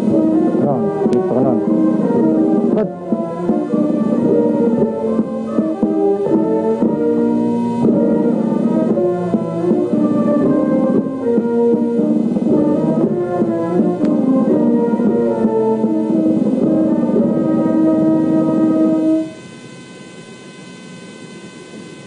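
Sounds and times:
slow brass band music: 0.0 - 19.4
steady electrical hum: 0.0 - 22.0.

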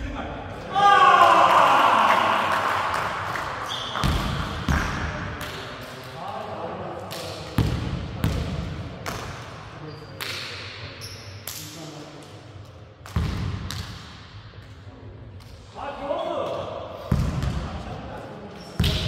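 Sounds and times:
men shouting in echoing hall: 0.5 - 3.2
basketball bouncing on wooden court: 4.0 - 5.0, 7.6 - 9.2, 17.1 - 17.7.

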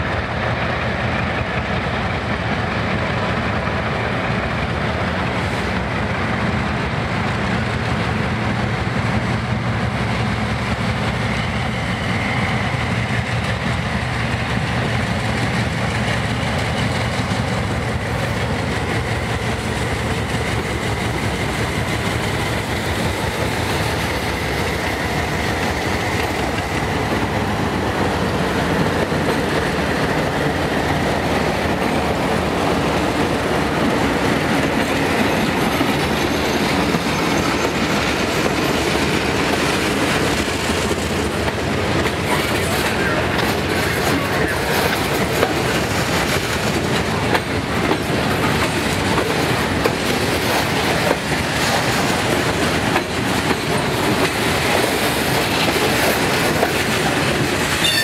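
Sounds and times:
diesel locomotive engines humming: 0.0 - 58.0
train wheels clattering on rails: 0.0 - 58.0.

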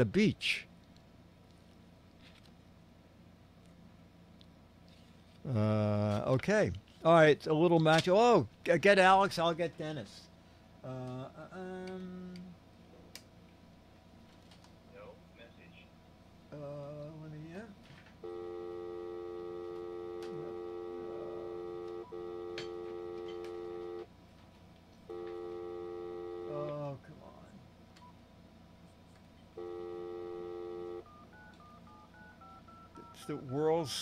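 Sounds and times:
dialing beeps: 18.2 - 24.0, 29.6 - 34.0
phone dial tone: 18.2 - 24.1, 25.1 - 26.8, 29.6 - 34.0.

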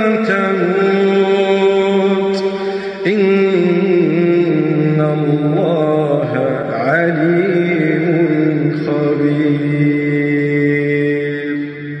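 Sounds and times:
person chanting: 0.0 - 12.0.

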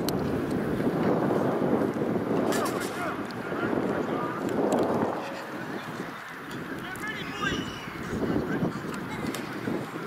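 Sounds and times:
wind noise on microphone: 0.0 - 10.0
distant voices calling out: 2.4 - 10.0.

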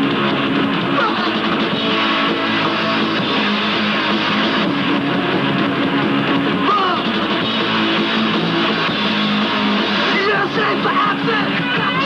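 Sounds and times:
bass guitar: 0.0 - 12.0
electric guitar: 0.0 - 12.0.

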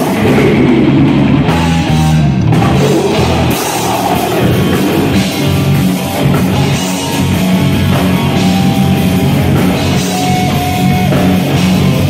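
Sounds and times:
bass guitar: 0.0 - 12.0
distorted electric guitars: 0.0 - 12.0
drum kit: 0.0 - 12.0.

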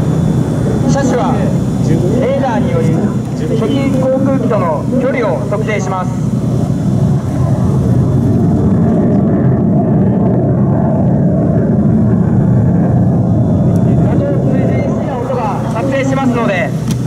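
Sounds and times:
large engine rumbling: 0.0 - 17.0.

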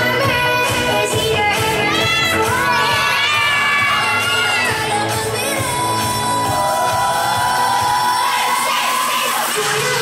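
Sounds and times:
music: 0.0 - 10.0
children shouting and cheering: 1.5 - 10.0.

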